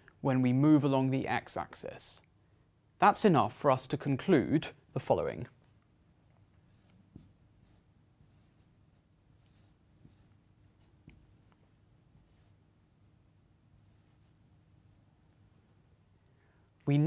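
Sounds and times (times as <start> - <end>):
marker scratching on whiteboard: 6.6 - 11.3, 12.2 - 12.6, 13.8 - 15.1.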